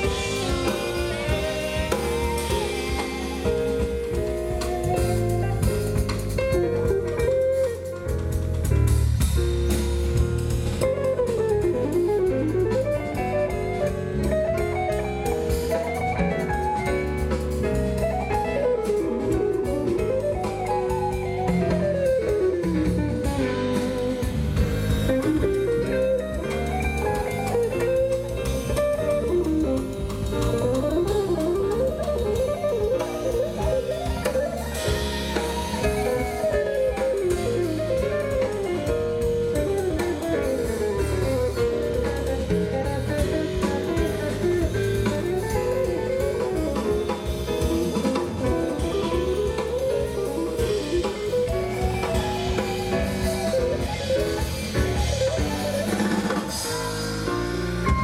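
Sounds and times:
bass: 0:00.0 - 0:58.0
drum kit: 0:00.0 - 0:58.0
guitar playing quick runs: 0:18.0 - 0:58.0.

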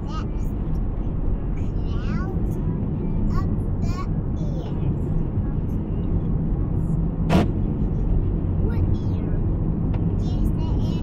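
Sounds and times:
vehicle cabin road rumble: 0:00.0 - 0:11.0.

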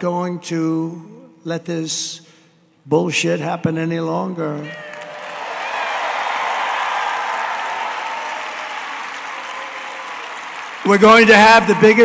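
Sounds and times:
large crowd applauding: 0:04.8 - 0:12.0.

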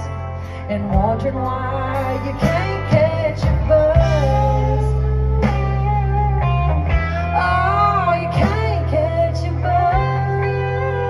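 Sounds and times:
guitar: 0:00.0 - 0:11.0
live country band music: 0:00.0 - 0:11.0.

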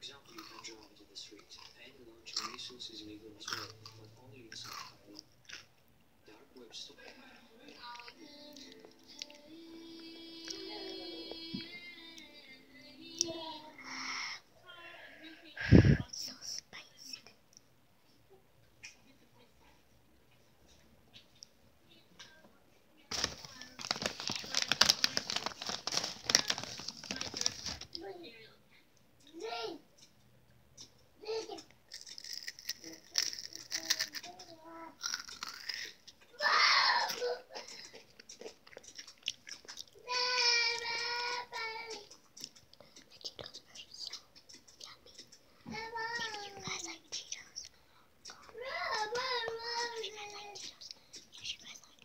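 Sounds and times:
child chewing crunchy chips: 0:00.2 - 0:02.8, 0:03.4 - 0:05.8, 0:07.1 - 0:10.6, 0:23.1 - 0:28.0, 0:31.6 - 0:36.3, 0:37.1 - 0:52.0
girl singing high note: 0:09.4 - 0:13.9
child whispering: 0:15.6 - 0:17.4, 0:42.9 - 0:52.0.

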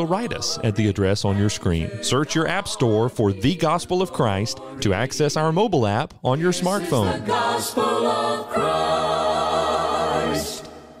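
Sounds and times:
choir holding a chord: 0:00.0 - 0:05.0, 0:06.5 - 0:11.0.

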